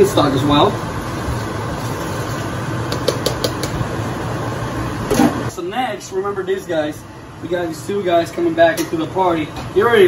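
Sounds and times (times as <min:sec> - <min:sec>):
vent fan humming: 0:00.0 - 0:10.0.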